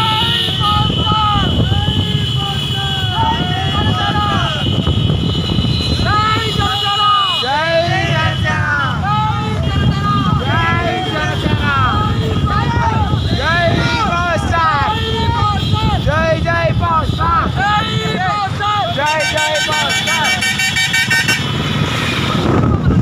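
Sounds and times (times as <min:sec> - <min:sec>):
motorcycle engines rumbling: 0:00.0 - 0:23.0
voices calling and shouting: 0:00.0 - 0:23.0.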